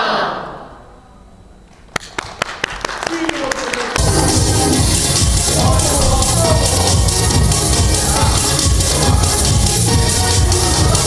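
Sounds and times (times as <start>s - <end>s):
audience hand claps: 1.7s - 4.2s.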